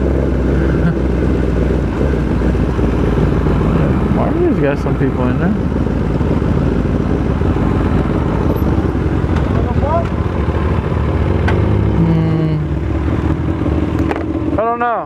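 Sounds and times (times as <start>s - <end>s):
motorcycle engine running: 0.0s - 15.0s.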